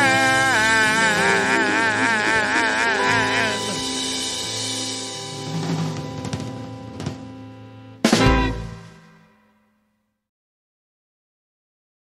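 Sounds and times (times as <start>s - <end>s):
drum strokes: 0.0s - 9.4s
electric blues chord ringing: 0.0s - 9.5s.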